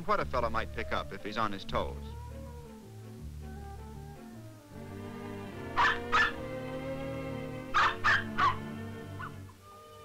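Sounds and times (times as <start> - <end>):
film score with held notes: 0.0 - 10.0
puppies yapping: 5.7 - 6.6, 7.7 - 9.5.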